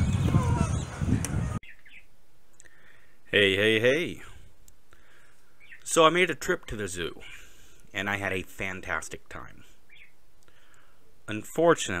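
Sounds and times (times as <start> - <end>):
wind buffeting microphone: 0.0 - 1.6
bird chirps: 0.0 - 2.1, 5.5 - 5.9, 9.8 - 10.2.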